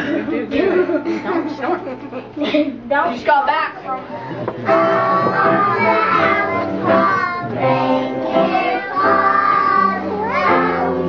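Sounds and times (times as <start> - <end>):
children singing together: 4.5 - 11.0.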